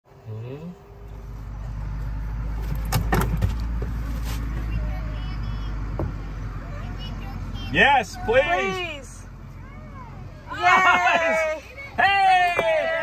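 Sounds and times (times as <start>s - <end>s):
golf cart rumbling: 0.8s - 13.0s.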